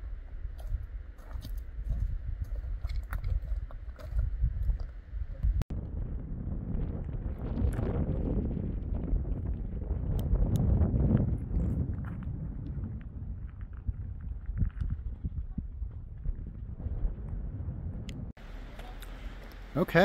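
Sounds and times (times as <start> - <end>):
wind buffeting microphone: 0.0 - 19.7.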